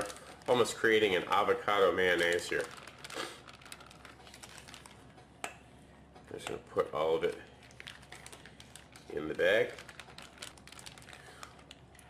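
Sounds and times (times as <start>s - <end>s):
plastic piping bag crinkling: 0.0s - 5.2s, 7.0s - 12.0s.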